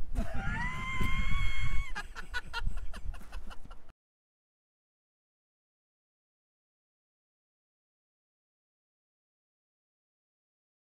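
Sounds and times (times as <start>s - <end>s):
elderly man laughing: 1.4s - 3.9s.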